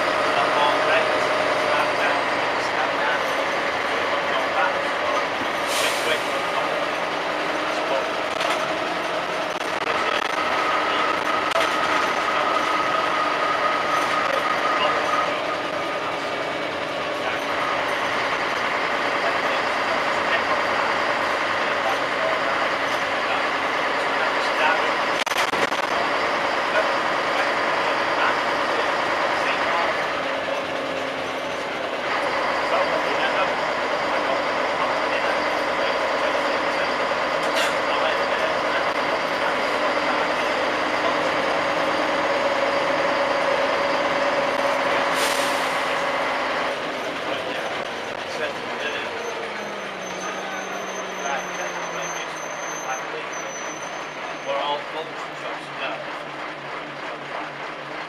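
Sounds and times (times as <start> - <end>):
bus engine and road noise: 0.0 - 58.0
air brakes hissing: 5.4 - 7.1, 44.8 - 46.3.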